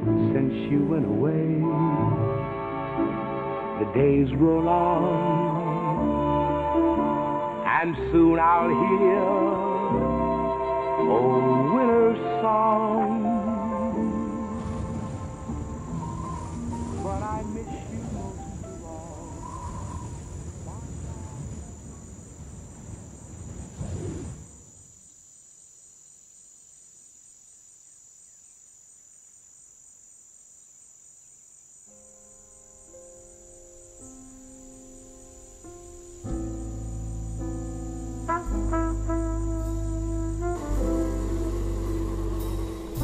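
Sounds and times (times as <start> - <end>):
music with soft held chords: 0.0 - 19.3, 31.9 - 43.0
vocal jazz ballad: 0.0 - 21.5, 36.3 - 43.0
crickets chirping: 0.0 - 43.0.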